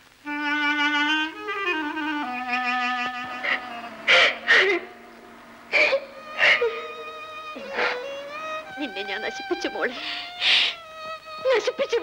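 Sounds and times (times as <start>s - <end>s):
soft background music: 0.2s - 12.0s
woman crying and sobbing: 5.7s - 9.0s.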